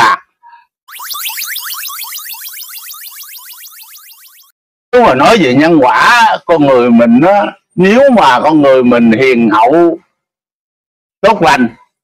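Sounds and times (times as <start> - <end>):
rising electronic chirps: 0.9 - 4.5.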